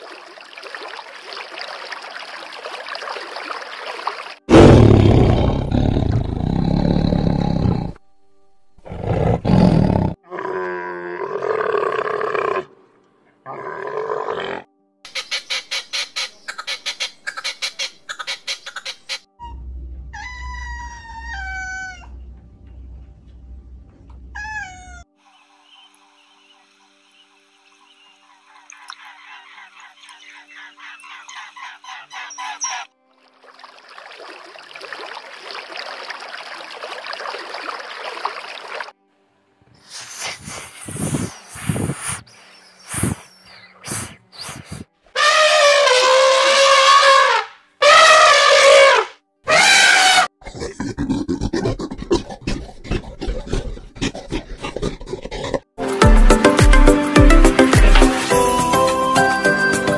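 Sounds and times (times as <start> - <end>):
harsh animal roar: 4.5 - 8.0, 47.8 - 55.7
pitched animal calls falling: 45.2 - 50.3.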